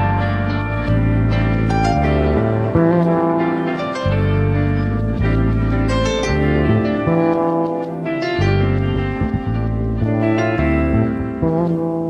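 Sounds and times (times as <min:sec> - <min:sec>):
bass and guitar notes: 0:00.0 - 0:12.0.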